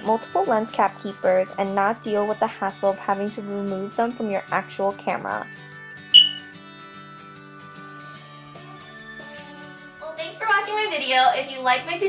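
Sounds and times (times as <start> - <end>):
short bright ping: 6.2 - 6.5.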